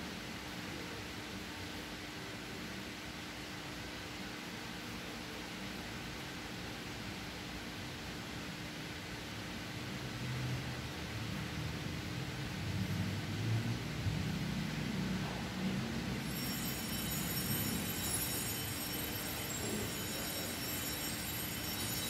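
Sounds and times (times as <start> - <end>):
faint constant hum: 0.0 - 22.0
steady background hiss: 0.0 - 22.0.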